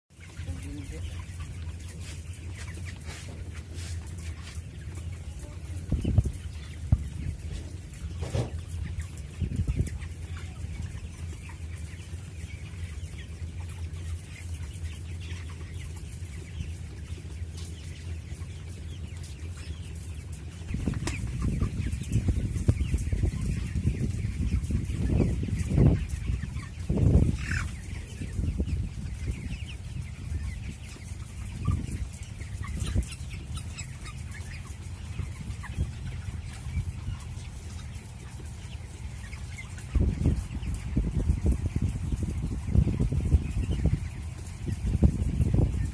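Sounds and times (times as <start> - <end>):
chickens clucking: 0.1 - 45.9.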